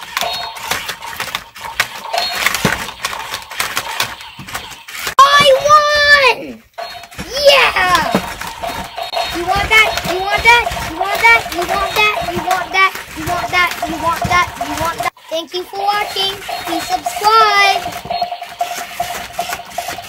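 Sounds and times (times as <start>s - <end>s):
toy robots clicking and clattering: 0.0s - 20.0s
child calling out: 7.2s - 8.2s.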